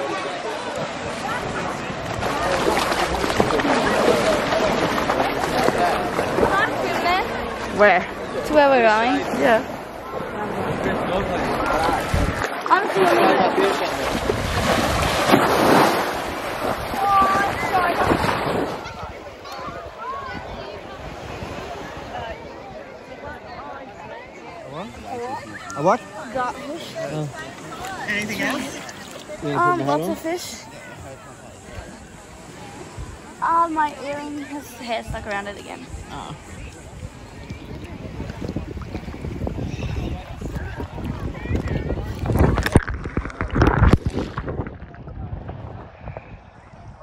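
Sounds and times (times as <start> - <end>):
seawater lapping and sloshing: 0.0 - 22.5, 24.7 - 45.0
small waves at shoreline: 0.0 - 47.0
wind buffeting microphone: 0.8 - 13.0, 13.6 - 23.7, 31.6 - 47.0.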